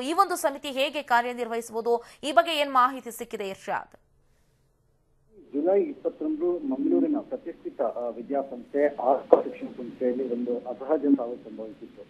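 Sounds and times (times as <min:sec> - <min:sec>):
man speaking over phone line: 0:05.4 - 0:12.0.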